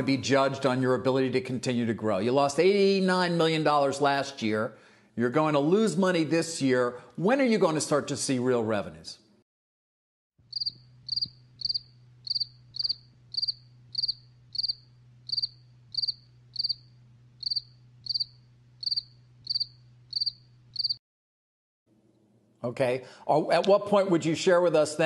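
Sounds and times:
crickets chirping: 0:10.4 - 0:21.0
low steady hum: 0:10.5 - 0:20.8.

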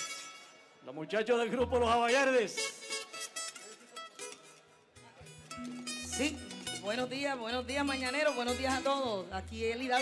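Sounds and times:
plucked strings: 0:02.6 - 0:10.0.

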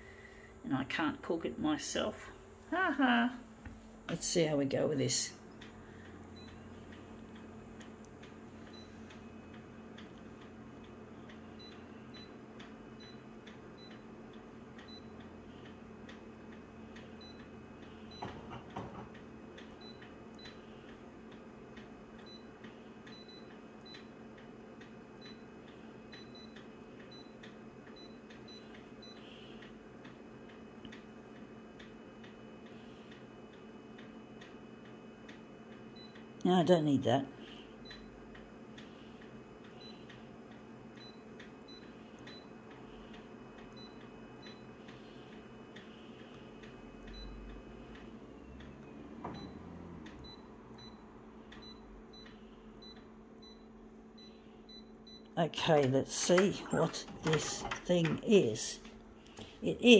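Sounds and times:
copier low hum: 0:00.0 - 0:59.9.

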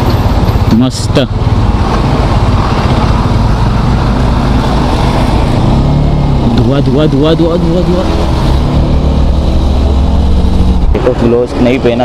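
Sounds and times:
heavy vehicle traffic: 0:00.0 - 0:12.0
motorcycle engine rumble: 0:00.0 - 0:12.0.

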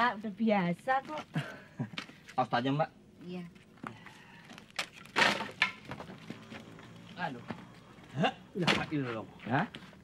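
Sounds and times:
firewood clattering onto woodpile: 0:04.8 - 0:06.4.

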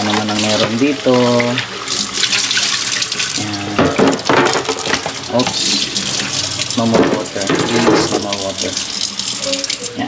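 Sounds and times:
faucet running into container: 0:00.0 - 0:10.0
water splashing: 0:00.0 - 0:10.0.

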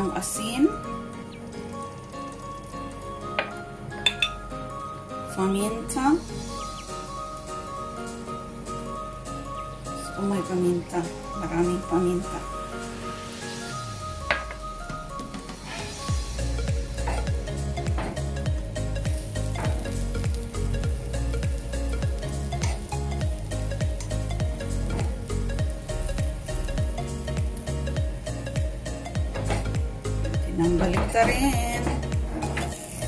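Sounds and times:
background music with steady beat: 0:00.0 - 0:33.0
egg and bread sizzling in a pan: 0:05.7 - 0:33.0
spatula scraping a pan: 0:15.5 - 0:16.1.

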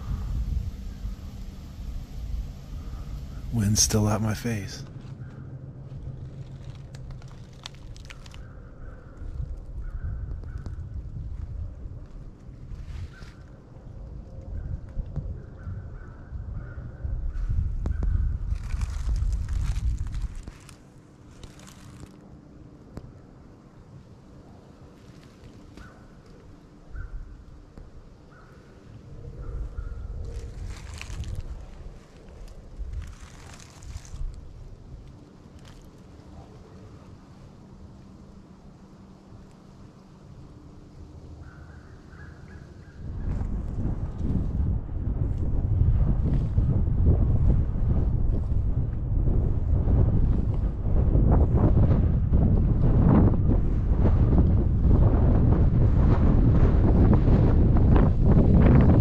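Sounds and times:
wind rumble on microphone: 0:00.0 - 0:59.0
footsteps crunching through dry leaves: 0:18.5 - 0:22.2, 0:30.3 - 0:34.5.

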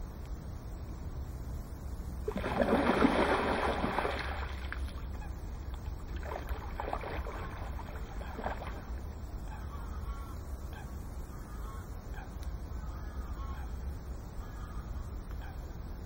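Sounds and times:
fish splashing at surface: 0:02.3 - 0:05.1, 0:06.1 - 0:08.9
faint bird calls: 0:03.4 - 0:16.0.

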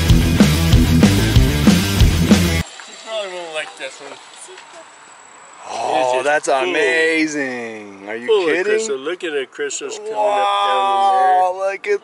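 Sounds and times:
loud rock music: 0:00.0 - 0:02.6
man exclaiming: 0:05.7 - 0:09.1, 0:09.9 - 0:12.0.

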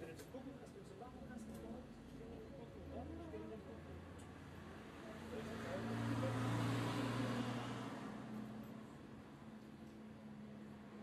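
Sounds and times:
road vehicle passing by: 0:04.4 - 0:09.5.

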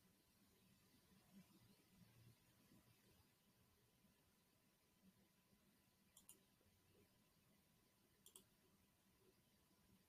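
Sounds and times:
faint double clicks: 0:08.2 - 0:08.5.

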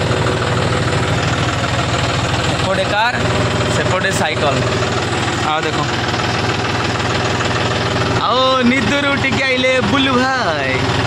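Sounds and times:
tractor diesel engine idling: 0:00.0 - 0:11.0.

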